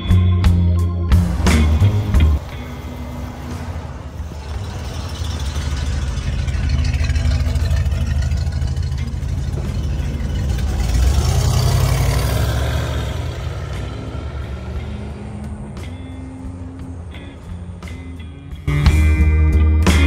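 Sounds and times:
car engine driving past: 0:01.1 - 0:18.7.

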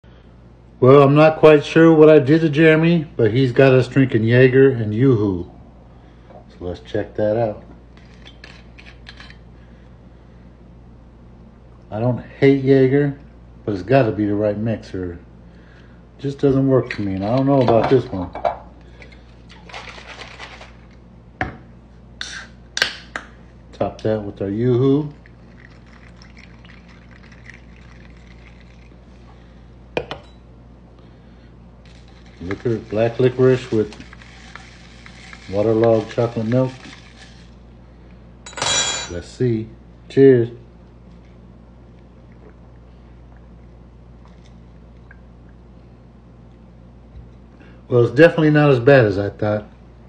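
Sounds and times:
drink pouring over ice: 0:25.1 - 0:29.0, 0:31.9 - 0:37.6.

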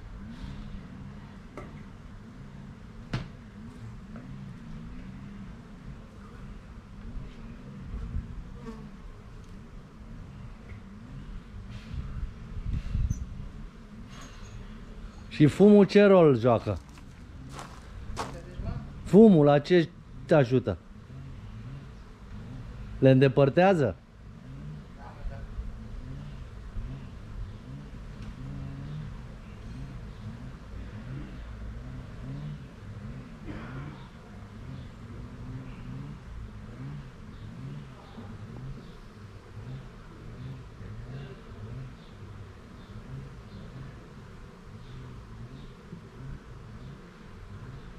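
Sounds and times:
honeybees buzzing: 0:16.6 - 0:18.4.

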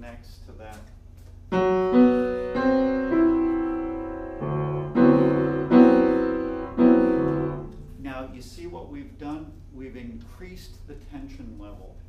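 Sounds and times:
piano chord: 0:01.5 - 0:08.1.

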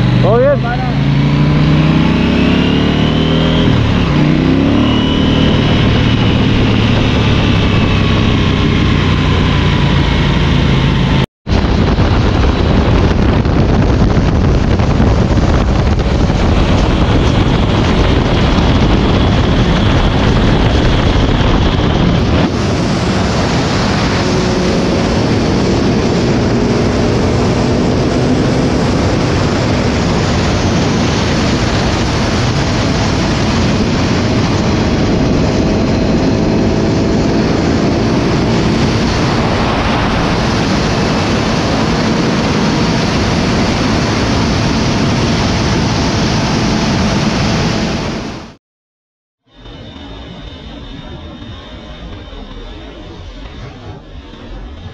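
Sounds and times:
motorcycle engine hum: 0:00.0 - 0:48.6, 0:49.4 - 0:54.9
wind rushing over microphone: 0:00.0 - 0:48.6, 0:49.4 - 0:54.9.

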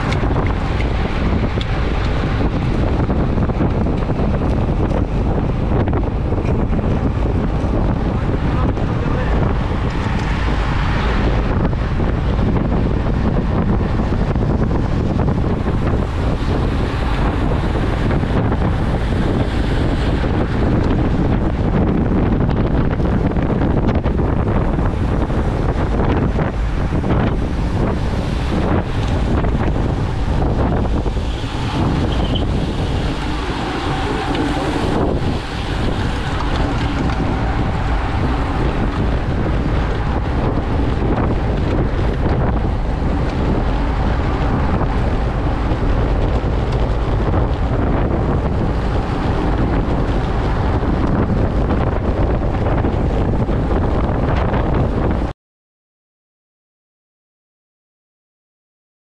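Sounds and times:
wind buffeting microphone: 0:00.0 - 0:55.3.

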